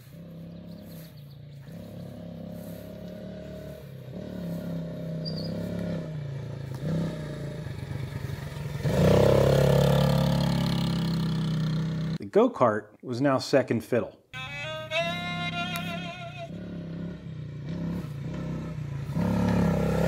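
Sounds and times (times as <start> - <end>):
quad bike engine passing: 0.0 - 12.2, 14.9 - 20.0.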